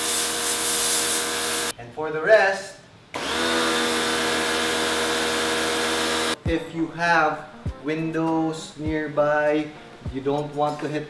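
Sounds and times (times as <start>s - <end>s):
pressure washer motor hum: 0.0s - 1.7s, 3.2s - 6.4s
water jet spraying on concrete: 0.0s - 1.7s.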